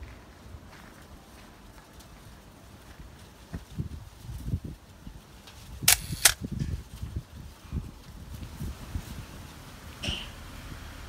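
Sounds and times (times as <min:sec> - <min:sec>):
camera shutter clicks: 0:05.9 - 0:06.4.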